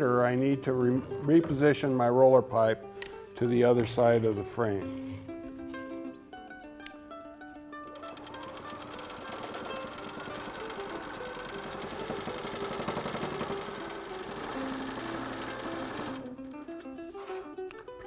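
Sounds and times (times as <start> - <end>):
plucked-string background music: 0.0 - 18.0
sewing machine stitching rapidly: 8.0 - 16.3.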